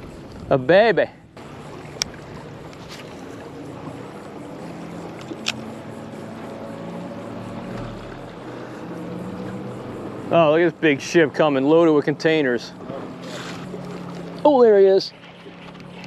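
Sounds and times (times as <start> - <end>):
water around a boat: 0.0 - 16.0
wind: 0.0 - 16.0
sharp clicks: 5.2 - 5.7.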